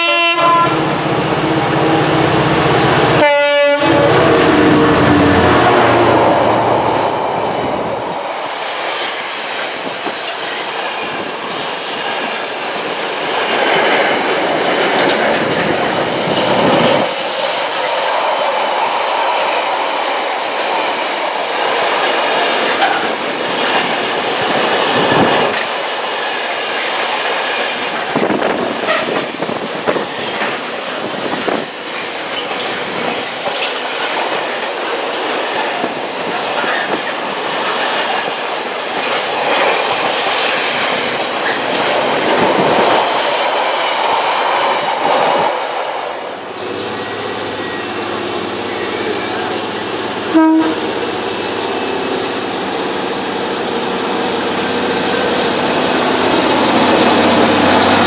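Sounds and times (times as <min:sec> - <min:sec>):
freight train wheels rushing on rail: 0:00.0 - 0:58.0
wheels clacking over track joints: 0:08.4 - 0:45.6.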